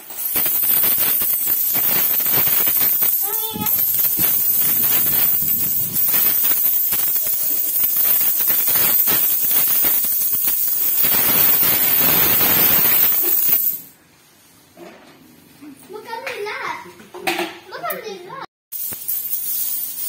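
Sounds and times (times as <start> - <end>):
coins pouring onto a heap: 0.0 - 13.8, 18.7 - 20.0.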